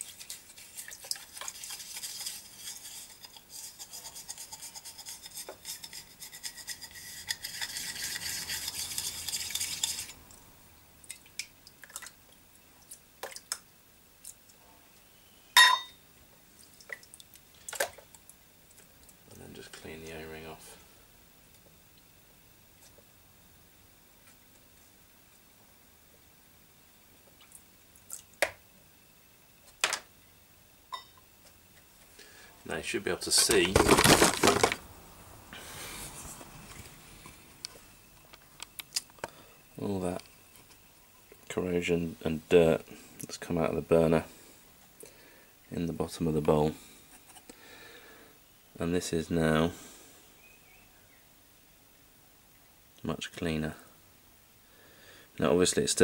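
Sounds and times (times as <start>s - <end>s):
toothbrush scrubbing metal lid: 0.0s - 10.2s.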